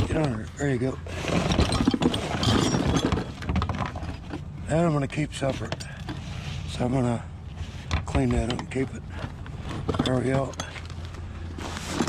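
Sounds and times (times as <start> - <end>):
metal scraps clattering: 0.0 - 4.3.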